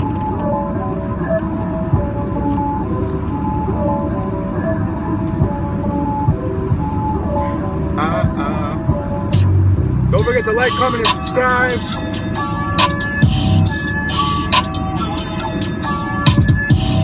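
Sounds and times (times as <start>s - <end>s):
road and engine rumble: 0.0s - 17.0s
soft melodic music: 0.0s - 17.0s.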